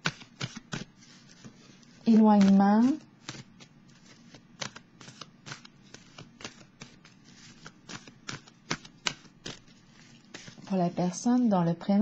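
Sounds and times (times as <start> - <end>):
cards being shuffled: 0.0 - 11.1.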